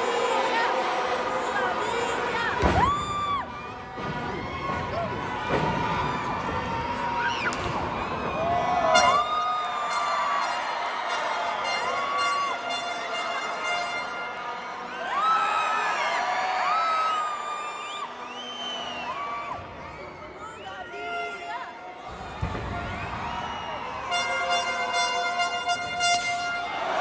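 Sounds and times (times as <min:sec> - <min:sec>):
crowd cheering and shouting: 0:00.0 - 0:27.0
music: 0:00.8 - 0:27.0.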